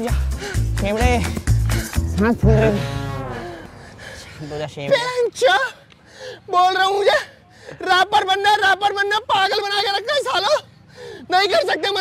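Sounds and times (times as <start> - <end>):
low bass beat: 0.0 - 4.8
long low call: 2.2 - 4.8.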